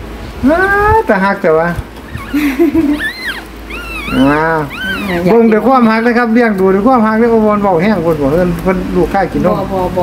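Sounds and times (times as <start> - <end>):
rat pups squeaking: 2.0 - 6.6.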